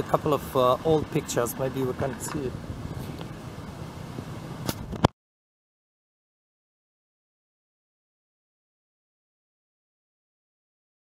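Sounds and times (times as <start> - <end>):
low rumble of traffic: 0.0 - 5.1
sharp click: 4.6 - 5.1.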